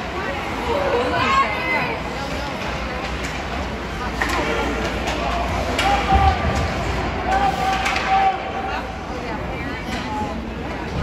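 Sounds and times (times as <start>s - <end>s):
steady rink hum: 0.0s - 11.0s
hockey sticks and puck clacking: 2.0s - 8.7s.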